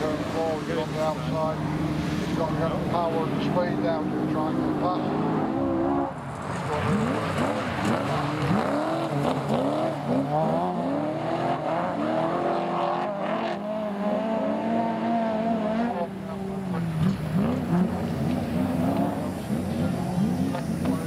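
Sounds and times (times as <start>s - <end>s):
racing car engines revving: 0.0s - 21.0s.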